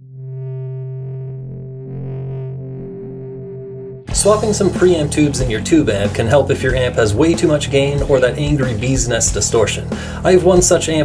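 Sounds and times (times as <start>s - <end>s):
distorted electric guitar chord: 0.0s - 6.0s.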